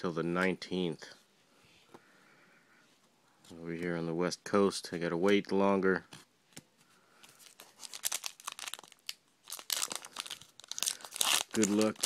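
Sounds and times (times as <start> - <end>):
foil wrapper crinkling: 7.3 - 12.0.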